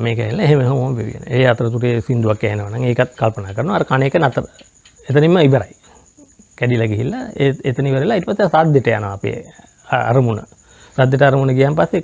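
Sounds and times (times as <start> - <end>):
man speaking: 0.0 - 5.8, 6.6 - 12.0
cricket trill: 0.0 - 12.0.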